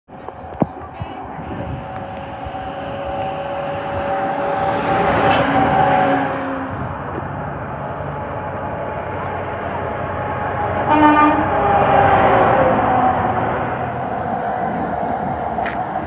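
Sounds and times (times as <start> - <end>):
traffic: 0.1 - 16.0.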